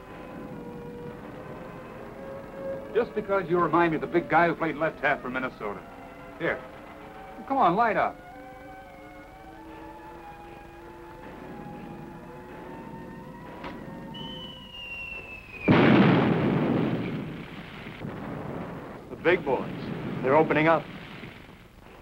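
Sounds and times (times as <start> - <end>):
dramatic score: 0.0 - 20.9
falling shell whistle: 12.9 - 16.2
loud explosion: 14.0 - 21.6.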